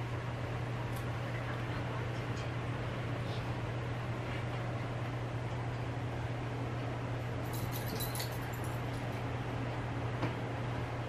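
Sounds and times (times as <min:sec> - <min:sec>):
steady low hum: 0:00.0 - 0:11.0
dog harness jingle: 0:07.4 - 0:08.9.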